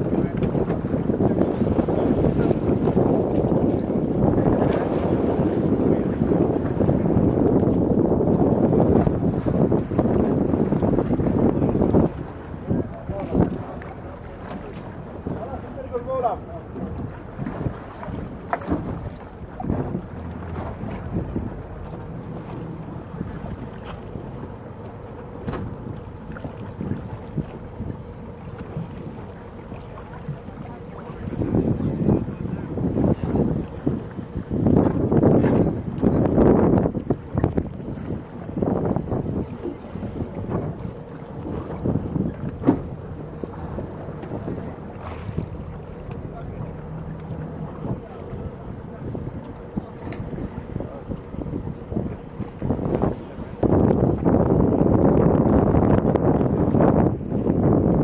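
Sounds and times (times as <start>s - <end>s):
water splashing around boat: 0.0s - 58.0s
wind buffeting microphone: 0.0s - 58.0s
knocks against boat: 16.8s - 22.7s, 25.4s - 27.9s, 39.6s - 48.0s.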